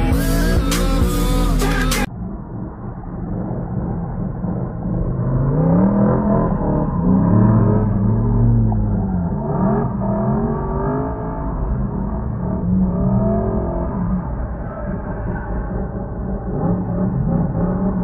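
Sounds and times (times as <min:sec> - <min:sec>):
car engine revving: 0:00.0 - 0:18.0.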